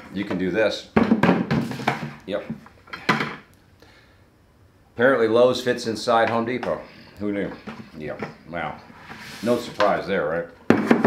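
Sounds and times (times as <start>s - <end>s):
plastic bucket knocking: 1.0s - 2.2s, 10.7s - 11.0s
plastic rubbing on plastic: 7.4s - 10.1s.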